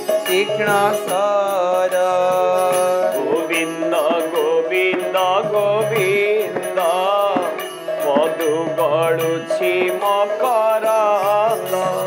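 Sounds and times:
harmonium holding notes: 0:00.0 - 0:12.0
man singing: 0:00.0 - 0:12.0.

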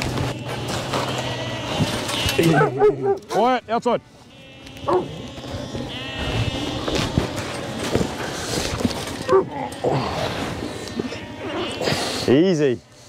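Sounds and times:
lambs bleating: 0:00.0 - 0:12.7.

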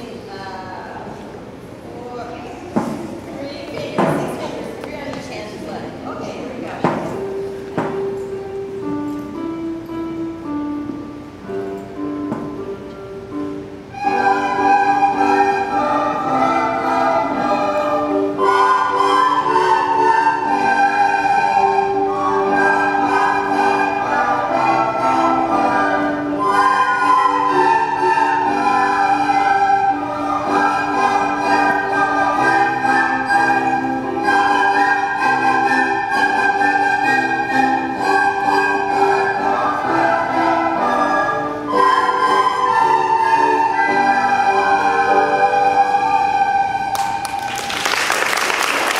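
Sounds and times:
children playing recorders: 0:13.3 - 0:48.9.

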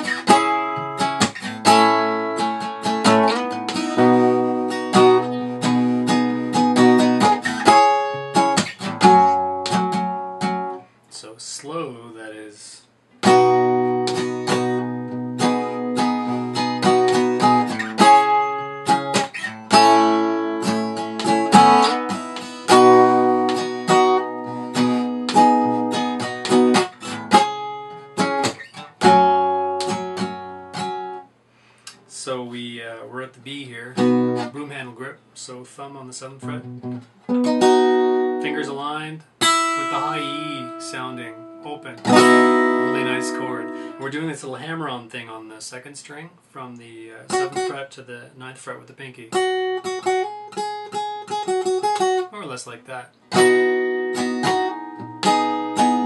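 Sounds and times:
fingerstyle acoustic guitar: 0:00.0 - 0:10.9, 0:13.2 - 0:31.3, 0:33.2 - 0:35.1, 0:36.2 - 0:45.0, 0:47.3 - 0:47.9, 0:48.7 - 0:56.0.

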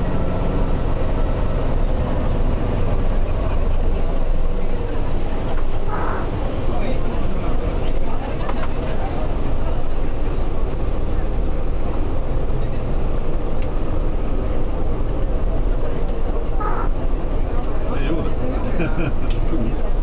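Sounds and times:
vehicle engine and road rumble: 0:00.0 - 0:20.0
faint voices: 0:01.8 - 0:20.0.

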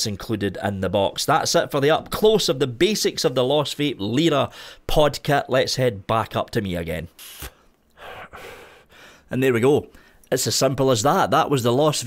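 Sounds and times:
sharp inhale: 0:04.5 - 0:04.8, 0:07.2 - 0:09.3
long breathy exhale: 0:07.2 - 0:09.3.

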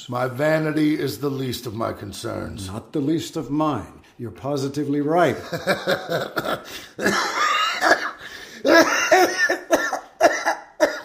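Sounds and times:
man coughing: 0:06.0 - 0:11.0.

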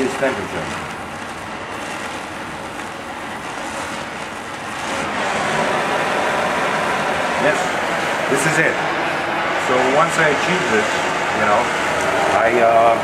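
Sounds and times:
gas torch flame hissing: 0:00.0 - 0:13.0.

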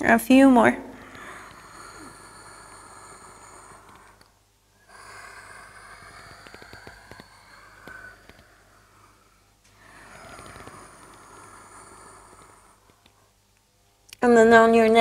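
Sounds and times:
woman breathing long breaths: 0:00.8 - 0:13.5
faint clicks: 0:05.9 - 0:11.3, 0:12.3 - 0:14.2.

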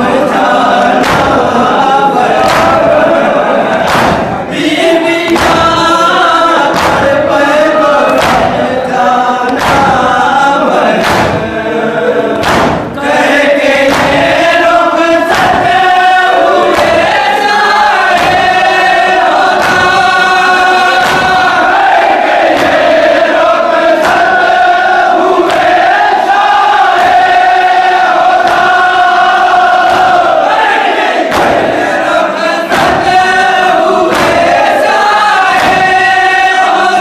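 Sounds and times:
man reciting into microphone: 0:00.0 - 0:21.7
chest-beating in unison: 0:00.0 - 0:37.0
men chanting in chorus: 0:00.0 - 0:37.0.

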